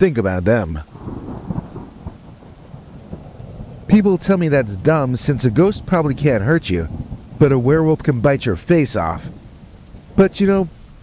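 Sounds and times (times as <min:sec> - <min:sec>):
rain: 0:00.0 - 0:11.0
thunder rumbling: 0:00.0 - 0:11.0.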